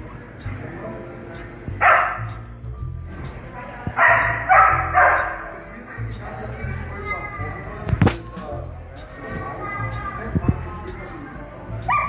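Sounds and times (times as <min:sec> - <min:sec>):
large dog barking: 0:01.8 - 0:02.3, 0:04.0 - 0:05.5.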